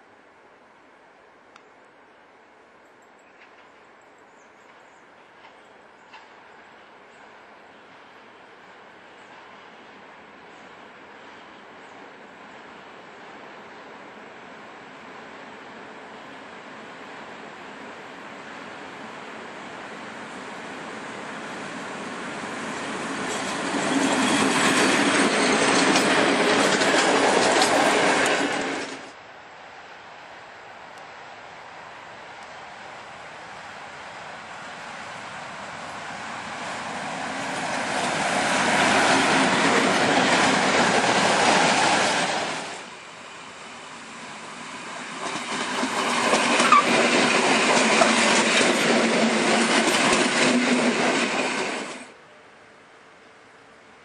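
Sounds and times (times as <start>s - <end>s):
freight train passing: 4.6s - 54.0s
wheels clattering on rails: 22.7s - 29.1s, 45.1s - 52.1s
high wheel squeal: 46.0s - 47.1s.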